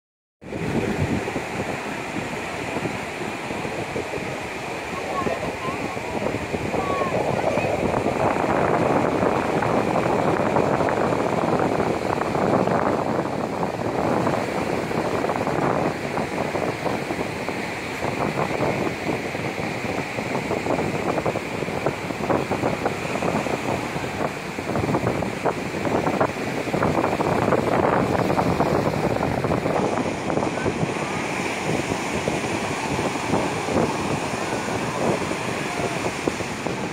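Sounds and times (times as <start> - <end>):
ocean surf breaking: 0.4 - 36.9
wind buffeting microphone: 0.4 - 36.9.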